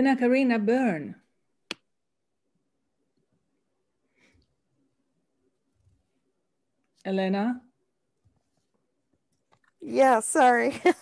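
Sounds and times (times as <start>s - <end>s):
woman speaking: 9.8s - 11.0s.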